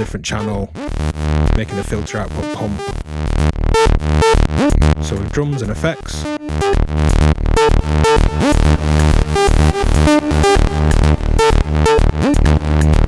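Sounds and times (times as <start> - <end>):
electronic drums: 0.0 - 13.0
synth bass line: 0.0 - 13.0.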